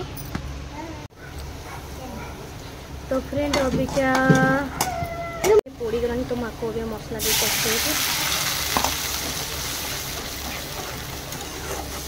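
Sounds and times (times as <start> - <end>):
liquid sizzling in hot oil: 7.2 - 12.0.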